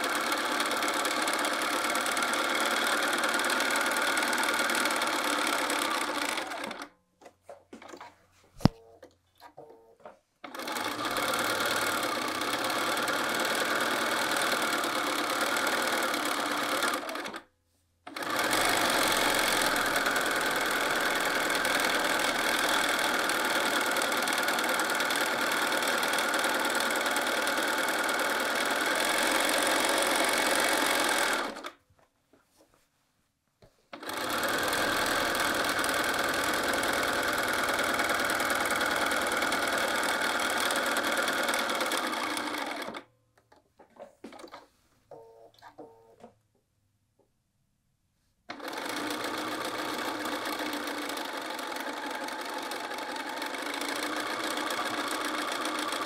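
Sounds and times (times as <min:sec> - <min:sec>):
sewing machine stitching: 0:00.0 - 0:06.9, 0:10.4 - 0:17.4, 0:18.1 - 0:31.8, 0:33.9 - 0:43.1, 0:48.5 - 0:56.0.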